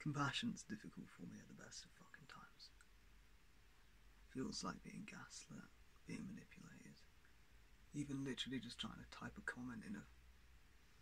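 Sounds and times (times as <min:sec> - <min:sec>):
faint low hum: 0:00.0 - 0:11.0
person whispering: 0:00.4 - 0:02.8, 0:04.4 - 0:07.1.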